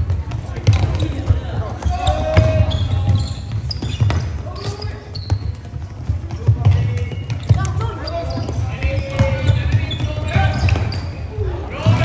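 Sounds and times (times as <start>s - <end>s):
players calling: 0.4s - 12.0s.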